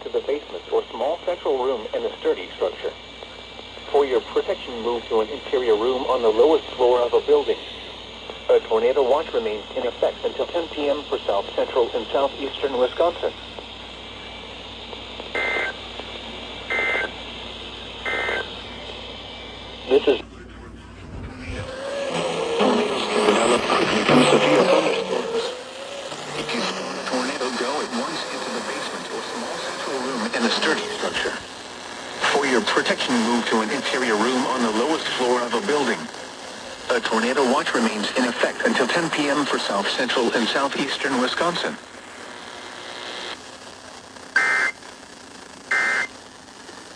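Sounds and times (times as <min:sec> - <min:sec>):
radio static hiss: 0:00.0 - 0:46.9
steady hum: 0:00.0 - 0:46.9
broadcast voice fragments: 0:03.8 - 0:13.5, 0:19.8 - 0:41.8.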